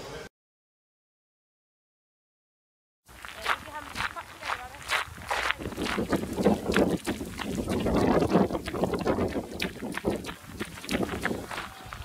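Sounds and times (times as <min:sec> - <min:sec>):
footsteps on gravel: 0:03.1 - 0:12.0
wind buffeting microphone: 0:03.4 - 0:12.0.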